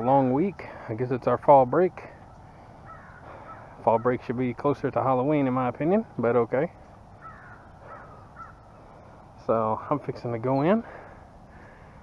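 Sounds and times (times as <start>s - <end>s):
outdoor background noise: 0.0s - 12.0s
faint bird call: 2.5s - 4.2s, 7.2s - 9.1s.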